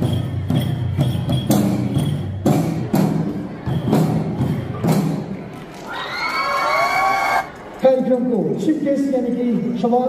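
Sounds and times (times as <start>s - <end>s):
audience shouting and cheering: 5.7s - 7.8s.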